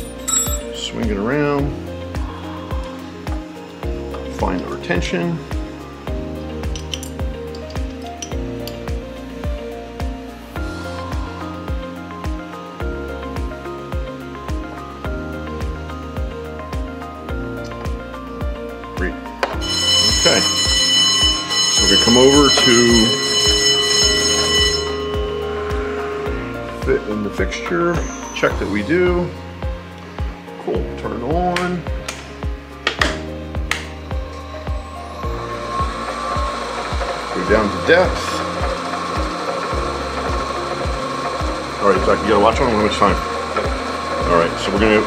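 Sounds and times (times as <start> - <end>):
background music with steady beat: 0.0 - 45.0
milling machine spindle whine: 19.6 - 29.4, 34.3 - 45.0
steady high tones: 19.6 - 29.4, 34.1 - 45.0.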